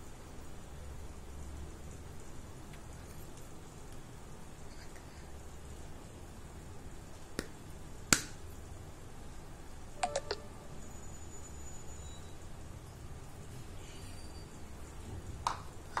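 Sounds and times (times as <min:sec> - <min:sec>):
low room noise: 0:00.0 - 0:16.0.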